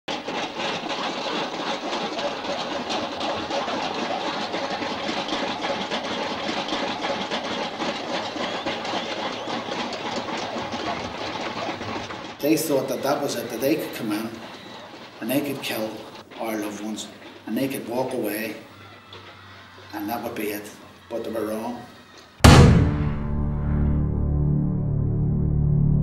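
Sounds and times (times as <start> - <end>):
film projector clattering: 0.1 - 22.3.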